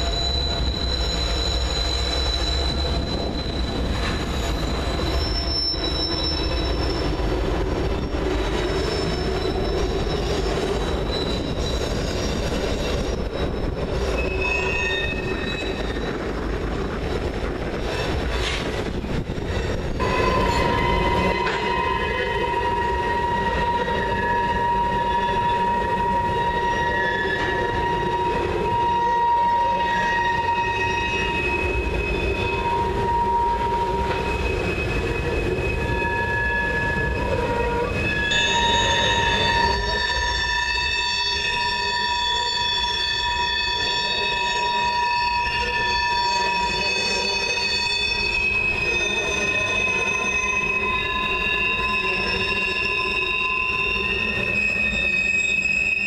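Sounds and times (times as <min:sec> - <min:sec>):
low train rumble: 0:00.0 - 0:56.0
train wheels squealing: 0:00.0 - 0:56.0.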